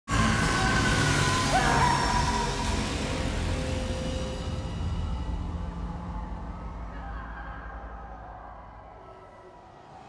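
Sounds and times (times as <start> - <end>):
low rumble: 0.1 - 9.0.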